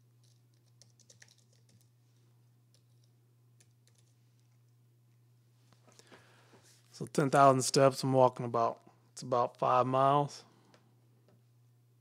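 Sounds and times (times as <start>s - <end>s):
steady low hum: 0.0s - 12.0s
typing on computer keyboard: 0.2s - 1.9s, 2.7s - 4.2s.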